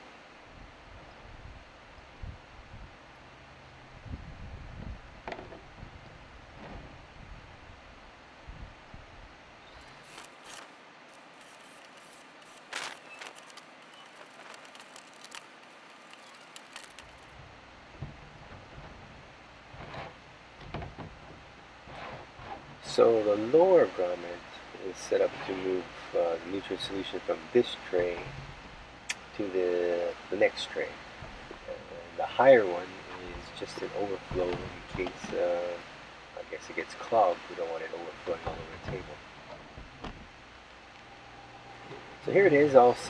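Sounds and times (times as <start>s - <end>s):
drill crackling through plastic: 9.8s - 17.3s.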